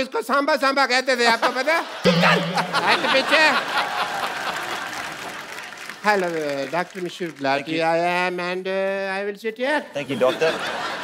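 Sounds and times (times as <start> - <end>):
audience laughing: 1.4 - 5.3, 10.0 - 11.0
audience applauding: 3.3 - 8.0.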